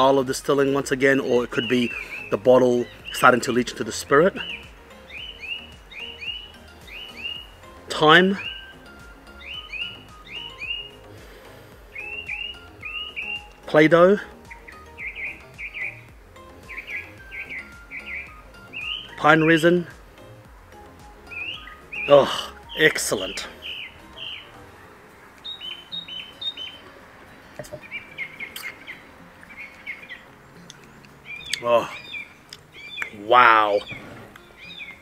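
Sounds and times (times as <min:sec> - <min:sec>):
bird chirping: 0:00.0 - 0:35.0
soft background music: 0:00.0 - 0:35.0.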